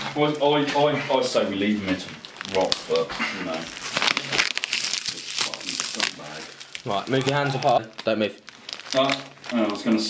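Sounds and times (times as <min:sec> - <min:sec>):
packing tape crinkling: 0:01.9 - 0:10.0.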